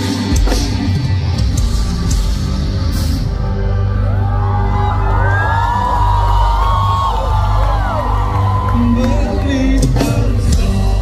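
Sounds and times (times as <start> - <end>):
crowd cheering and whooping: 3.5 - 10.1.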